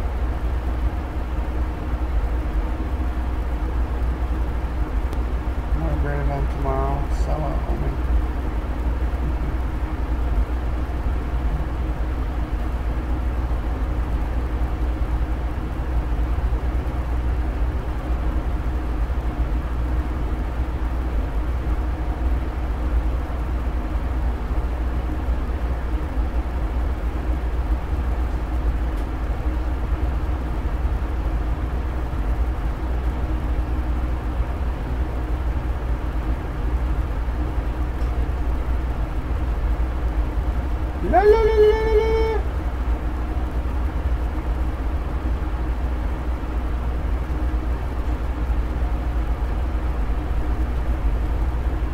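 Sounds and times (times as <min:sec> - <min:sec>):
constant hum: 0:00.0 - 0:51.9.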